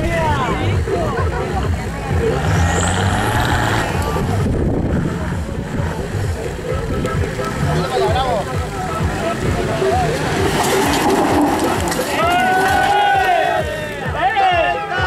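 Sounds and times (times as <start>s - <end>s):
voices: 0.0s - 15.0s
vehicle engine revving under load: 1.6s - 12.0s.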